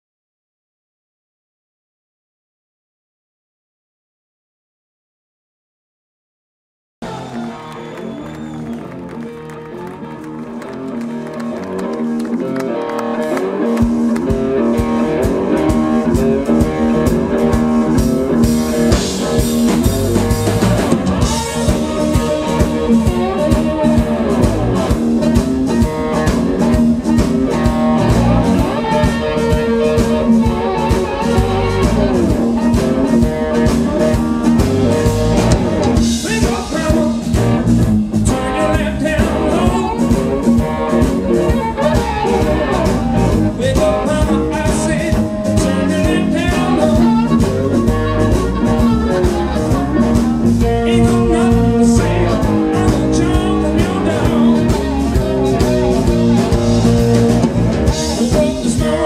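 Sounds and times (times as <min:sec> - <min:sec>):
drum kit: 0:07.0 - 0:59.0
electric bass: 0:07.0 - 0:59.0
slide guitar gliding notes: 0:07.0 - 0:59.0.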